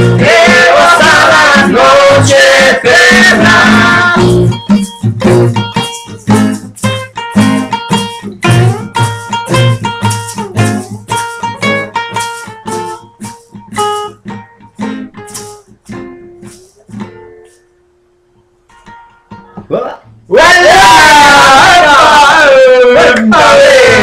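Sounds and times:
acoustic guitars strumming: 0.0s - 24.0s
single plucked guitar notes: 3.4s - 20.2s.

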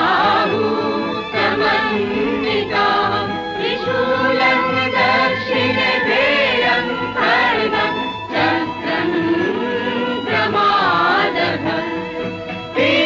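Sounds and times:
choir singing a devotional song: 0.0s - 13.0s
musical accompaniment: 0.0s - 13.0s.

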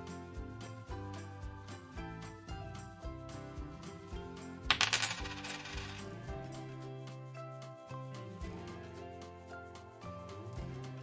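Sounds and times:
background music: 0.0s - 11.0s
coins jingling: 4.7s - 6.1s.

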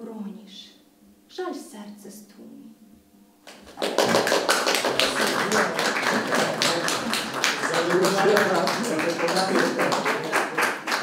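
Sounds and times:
audience applauding: 3.5s - 11.0s.

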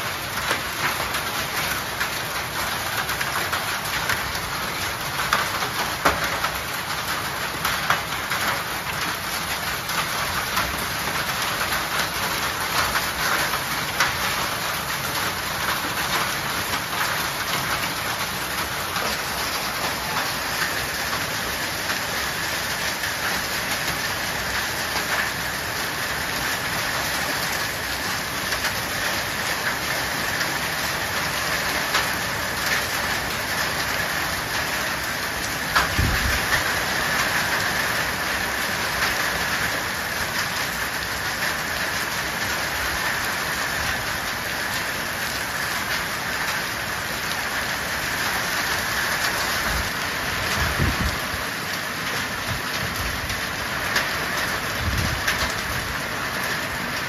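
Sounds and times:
heavy rain on paving: 0.0s - 57.0s.

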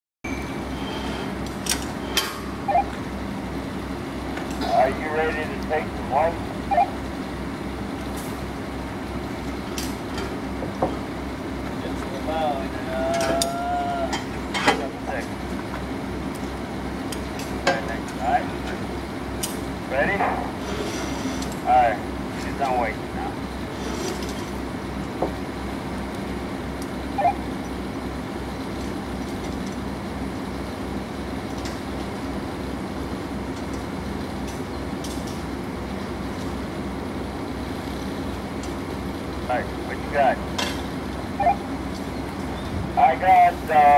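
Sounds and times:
crane engine droning: 0.3s - 43.9s
diesel engine throbbing: 0.5s - 20.6s.

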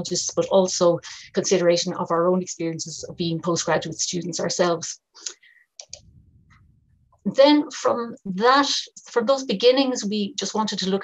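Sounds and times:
computer clicks: 5.2s - 6.1s
faint low hum: 5.8s - 7.6s.

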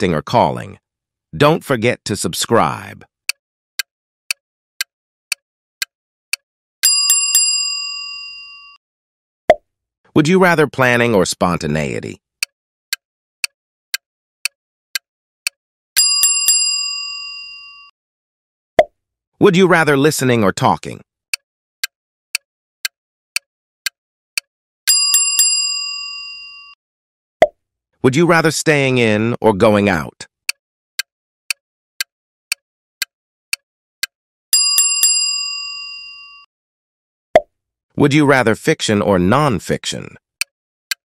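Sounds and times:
countdown timer ticks: 3.3s - 6.4s, 12.4s - 15.6s, 22.3s - 24.5s, 30.5s - 34.1s
bicycle bell ringing: 6.8s - 8.8s, 16.0s - 17.9s, 24.9s - 26.8s, 34.5s - 36.5s.

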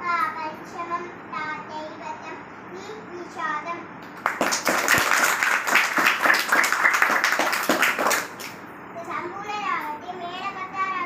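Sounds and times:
people clapping: 4.0s - 8.6s.

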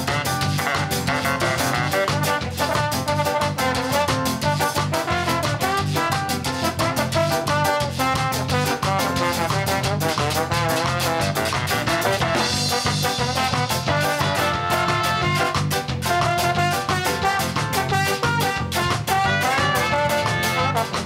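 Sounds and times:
bass: 0.0s - 21.0s
drum kit: 0.0s - 21.0s
saxophone: 0.0s - 21.0s
trombone: 0.0s - 21.0s.

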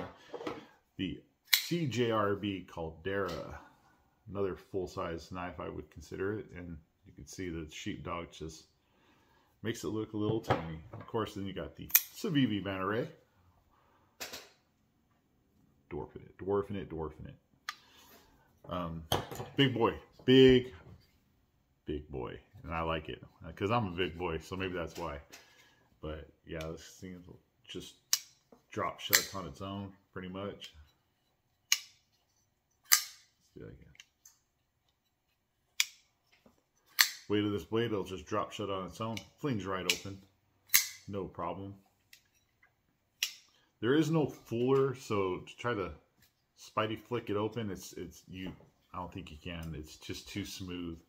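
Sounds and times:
folding knife blade clicking shut: 32.9s - 33.2s, 37.0s - 37.2s.

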